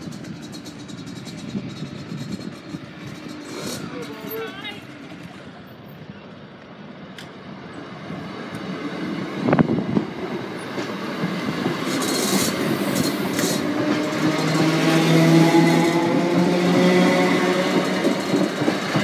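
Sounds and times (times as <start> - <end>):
train wheels clattering over rail joints: 0.0 - 5.5, 8.5 - 19.0.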